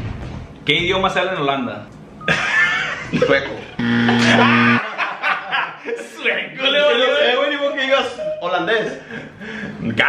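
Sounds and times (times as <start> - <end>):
men laughing: 2.2 - 6.2
low buzzing tone: 3.8 - 4.8.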